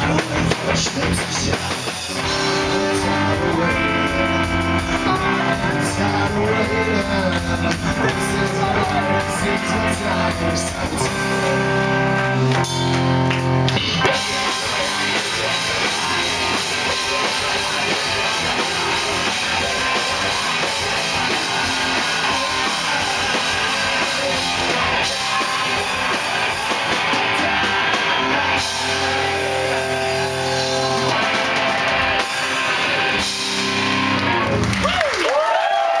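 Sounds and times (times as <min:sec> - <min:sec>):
person singing: 0:00.0 - 0:12.6, 0:13.7 - 0:33.8
bass guitar: 0:00.0 - 0:36.0
drum kit: 0:00.0 - 0:36.0
electric guitar: 0:00.0 - 0:36.0.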